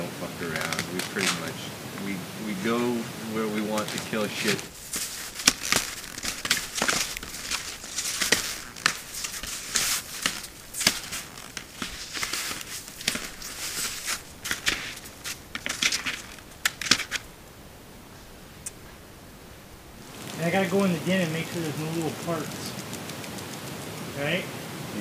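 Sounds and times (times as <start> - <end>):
crunching footsteps in snow: 0.0 - 17.5, 19.8 - 24.4
rustling: 0.0 - 25.0.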